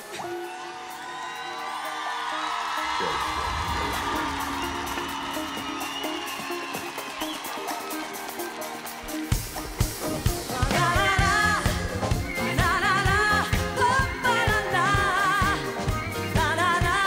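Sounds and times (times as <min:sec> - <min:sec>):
crowd cheering and whooping: 0:00.0 - 0:09.7
live pop band playing: 0:02.6 - 0:17.0
deep bass: 0:02.9 - 0:05.8.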